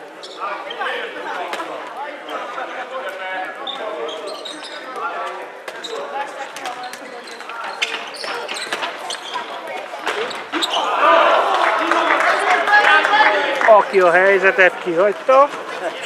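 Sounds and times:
players' voices and shouts: 0.0s - 16.0s.

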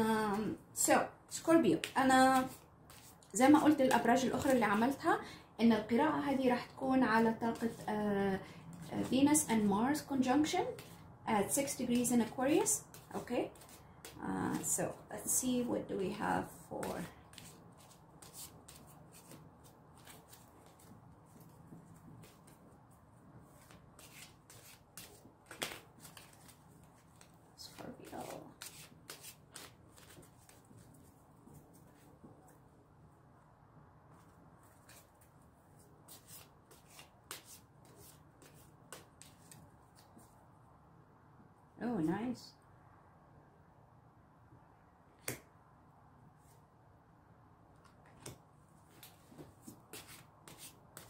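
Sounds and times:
cards being shuffled: 1.8s - 4.6s, 16.8s - 22.6s, 23.5s - 32.1s, 34.7s - 40.3s, 47.8s - 51.0s.

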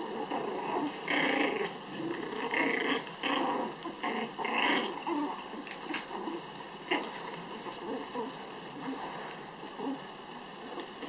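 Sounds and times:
puppies growling: 0.0s - 11.0s.

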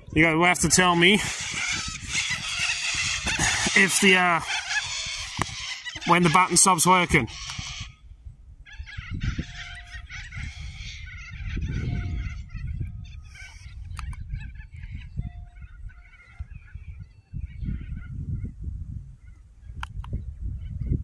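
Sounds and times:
wind rumbling on microphone: 0.0s - 21.0s.

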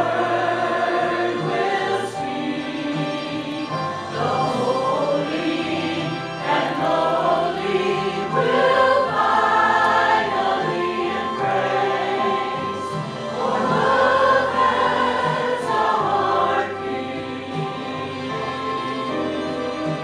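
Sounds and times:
church choir singing: 0.0s - 20.0s.

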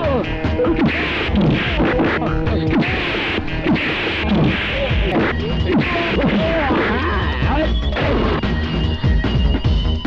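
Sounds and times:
film background music: 0.0s - 10.0s.

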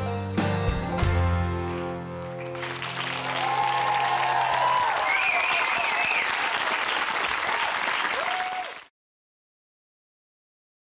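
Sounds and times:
audience applauding: 2.2s - 8.9s.

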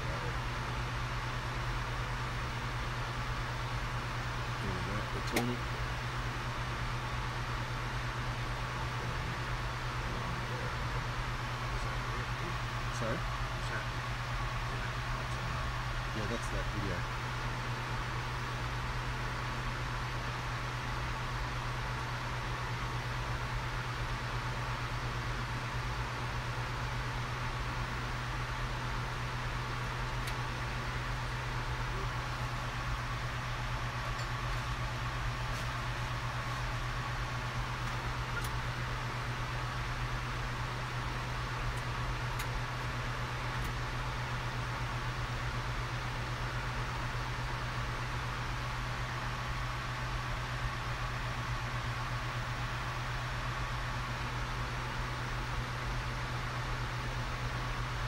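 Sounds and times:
low hum: 0.0s - 58.0s.

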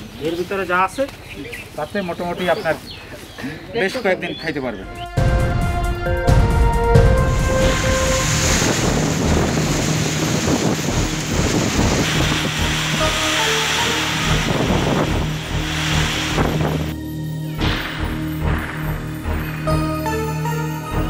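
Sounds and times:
background music: 4.7s - 21.0s
wind and driving rain: 5.1s - 20.2s.

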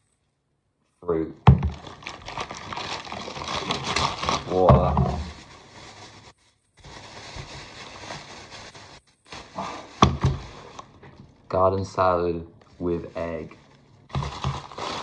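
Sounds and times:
paper and plastic bags crinkling: 1.6s - 11.2s, 12.8s - 15.0s.

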